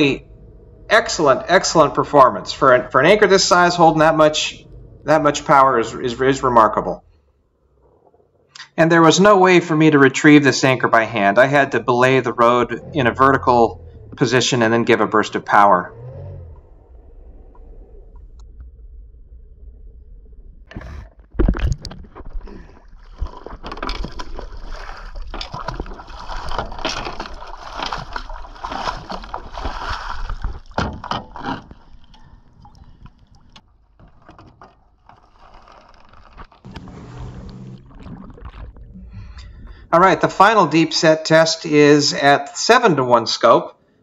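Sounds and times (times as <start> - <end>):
low rumble: 0.0 - 8.6, 10.7 - 30.8, 36.0 - 41.0
water splashing and sloshing: 10.2 - 40.7.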